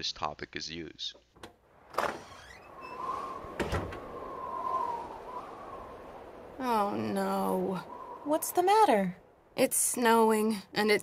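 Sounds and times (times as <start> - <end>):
door opening: 1.4 - 4.1
wind rushing and whistling: 1.6 - 11.0.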